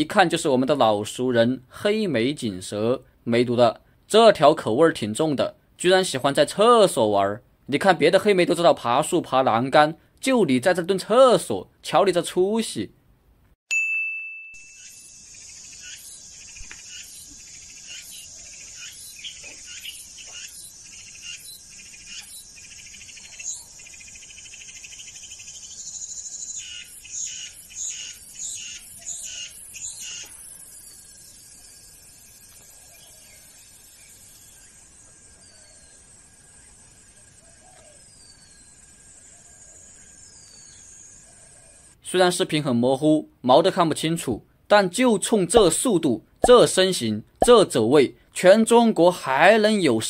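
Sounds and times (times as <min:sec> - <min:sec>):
high ding: 0:13.7 - 0:14.9
bird-like chirps: 0:14.6 - 0:42.0
insects trilling: 0:14.7 - 0:42.0.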